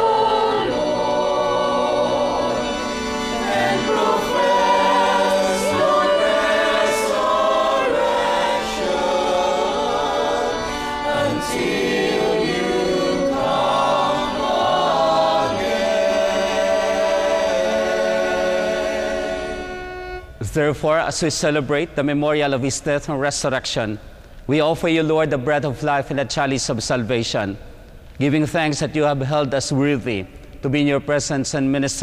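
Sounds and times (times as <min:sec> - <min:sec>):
choir singing: 0:00.0 - 0:20.2.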